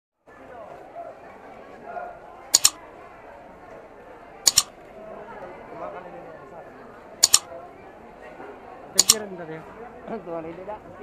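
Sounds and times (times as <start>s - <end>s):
crowd chatter: 0.2s - 11.0s
double mouse-click sound effect: 2.6s - 2.8s, 4.5s - 4.7s, 7.2s - 7.5s, 9.0s - 9.2s.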